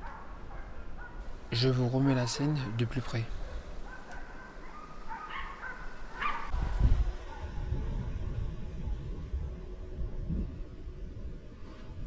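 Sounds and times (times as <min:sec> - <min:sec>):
dogs baying: 0:03.3 - 0:06.5
low rumble on microphone: 0:06.5 - 0:12.0.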